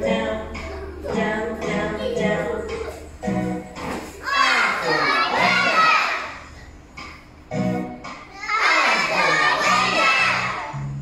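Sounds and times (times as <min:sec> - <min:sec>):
recorded children's song: 0:00.0 - 0:11.0
young children's voices: 0:04.2 - 0:06.4, 0:08.3 - 0:10.6.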